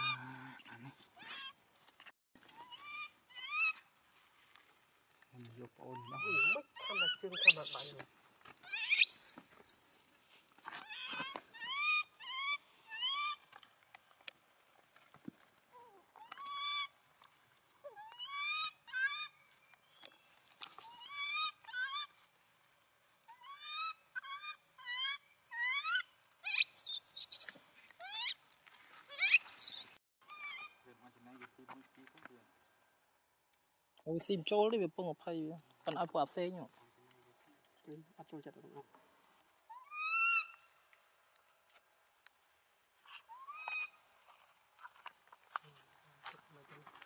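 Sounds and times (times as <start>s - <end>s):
infant monkey squealing: 2.6s - 3.8s, 6.0s - 8.0s, 8.7s - 10.0s, 10.8s - 13.4s, 17.8s - 19.4s, 20.9s - 22.1s, 23.3s - 28.4s, 29.1s - 30.8s, 39.7s - 40.7s, 43.1s - 44.0s.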